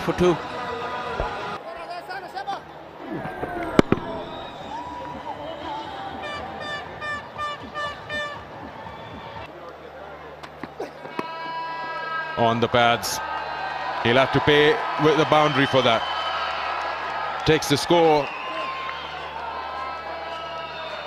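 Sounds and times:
stadium crowd ambience: 0.0 - 21.0.

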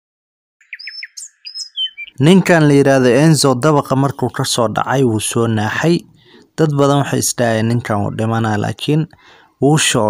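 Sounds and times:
bird chirping: 0.6 - 2.6.

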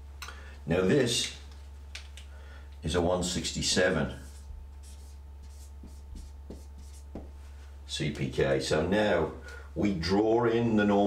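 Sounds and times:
marker pen writing on paper: 4.2 - 7.4.

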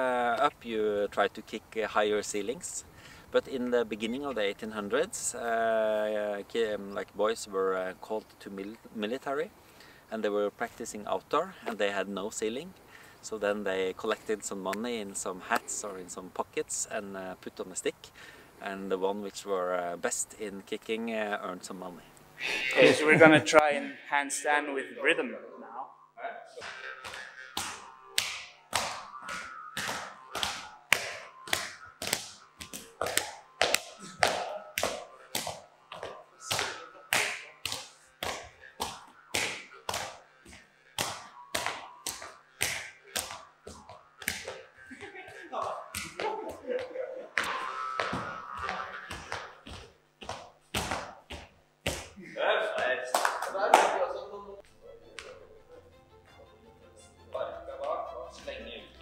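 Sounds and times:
voices: 10.1 - 49.7
handclaps keeping a steady beat: 26.6 - 52.2, 52.8 - 54.0, 55.1 - 55.4.

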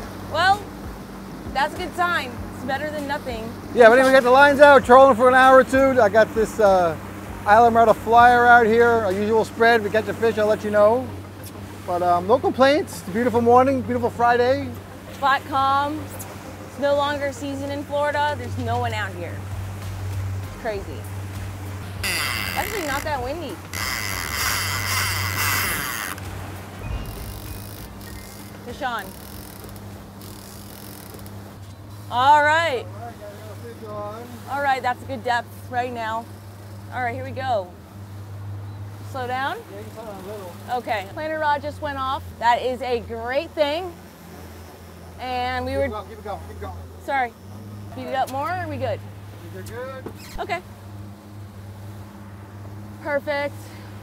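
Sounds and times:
boat engine humming: 0.0 - 54.0
wake water rushing: 0.0 - 54.0
wind hiss: 18.7 - 32.2.

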